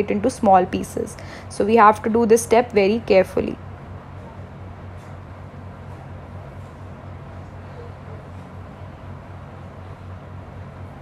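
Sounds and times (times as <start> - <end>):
blower humming and rushing air: 0.0 - 11.0.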